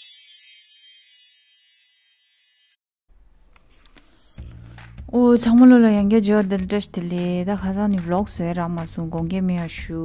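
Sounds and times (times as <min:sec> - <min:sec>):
shimmering wind-chime sparkle: 0:00.0 - 0:02.8.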